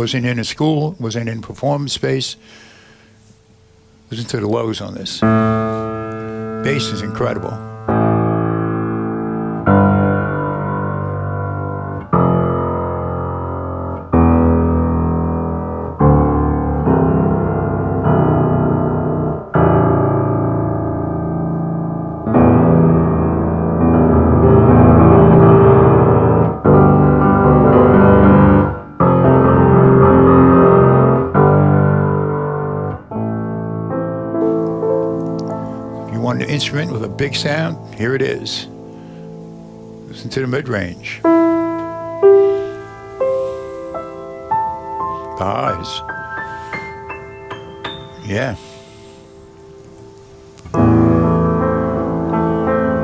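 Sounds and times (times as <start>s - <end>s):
grand piano chords: 0.0s - 53.0s.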